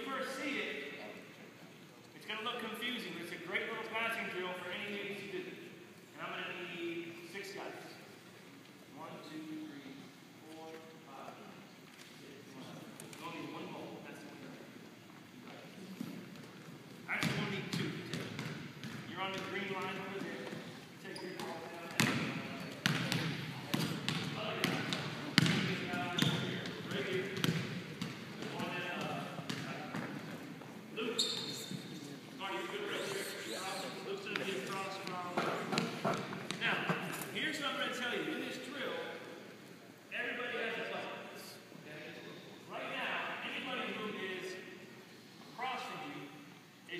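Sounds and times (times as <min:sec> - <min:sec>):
basketballs bouncing on hardwood floor: 0:17.2 - 0:19.9, 0:21.4 - 0:30.4, 0:34.3 - 0:37.0.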